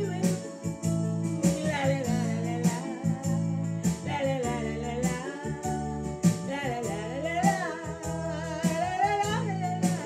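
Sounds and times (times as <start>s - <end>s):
woman singing: 0.0s - 0.7s, 1.4s - 10.0s
bass line: 0.0s - 10.0s
electronic keyboard chords: 0.0s - 10.0s.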